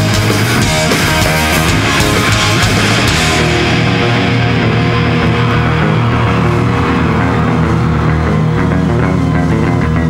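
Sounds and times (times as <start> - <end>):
punk rock band playing live: 0.0 - 10.0.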